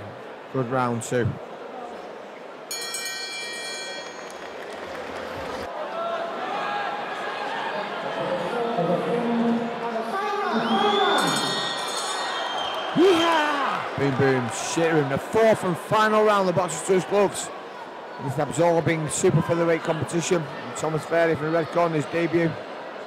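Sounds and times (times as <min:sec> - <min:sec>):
crowd chattering: 0:00.0 - 0:23.0
boxing ring bell: 0:02.7 - 0:04.5, 0:11.2 - 0:12.5.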